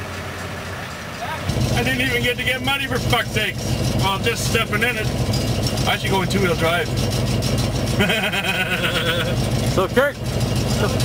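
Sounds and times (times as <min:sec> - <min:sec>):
pickup truck engine idling: 0:00.0 - 0:11.0
man laughing: 0:08.0 - 0:09.5.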